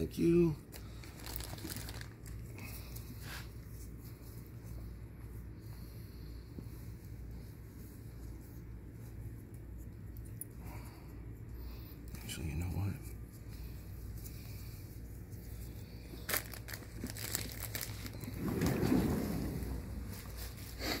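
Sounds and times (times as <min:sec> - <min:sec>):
gauze wrapping crinkling rustle: 0:00.0 - 0:04.8, 0:12.2 - 0:21.0
steady low hum: 0:00.0 - 0:21.0.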